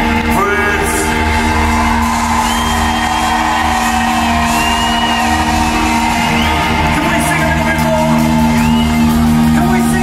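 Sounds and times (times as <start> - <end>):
high gliding melodic line: 0.0 - 10.0
live band playing: 0.0 - 10.0
audience whooping: 1.1 - 9.8.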